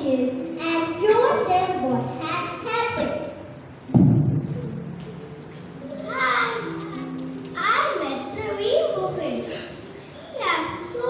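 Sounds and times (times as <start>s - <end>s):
deep booming thud: 3.9s - 4.5s.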